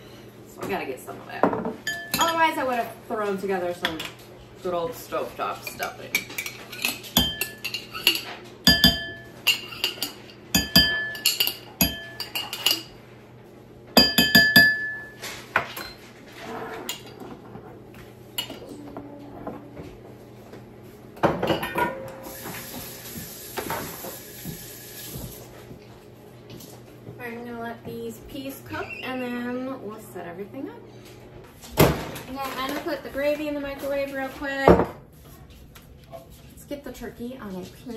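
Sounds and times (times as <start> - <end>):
metal spoon clinking on bowl: 1.9 - 2.4, 5.8 - 12.9.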